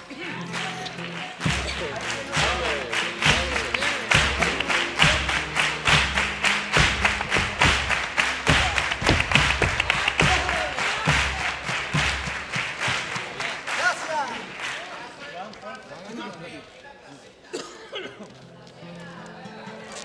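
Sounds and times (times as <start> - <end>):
guitars with percussion: 0.0 - 13.7, 18.3 - 20.0.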